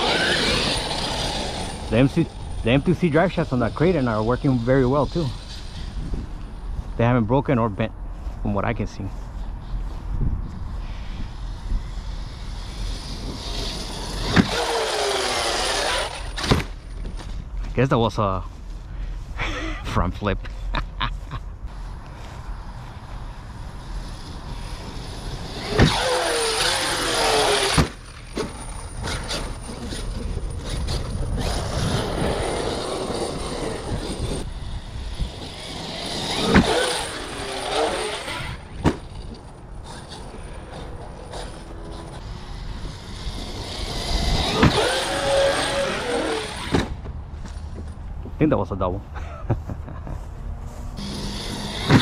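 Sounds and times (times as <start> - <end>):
rc truck motor whine: 0.0 - 6.7, 10.8 - 17.3, 22.6 - 48.0, 51.0 - 52.0.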